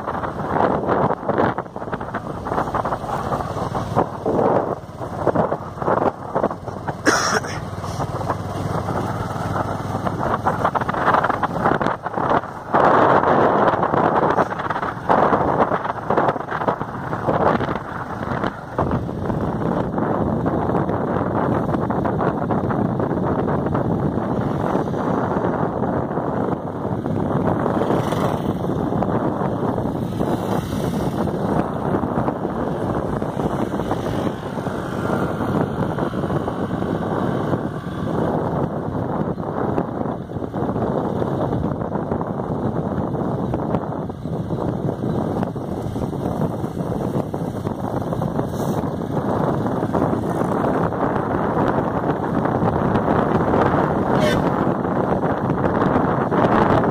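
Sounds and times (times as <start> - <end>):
road noise: 0.0 - 56.9
wind buffeting microphone: 0.0 - 56.9.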